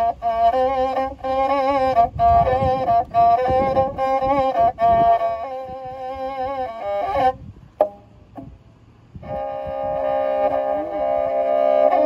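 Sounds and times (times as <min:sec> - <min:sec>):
bowed fiddle notes: 0:00.0 - 0:12.0.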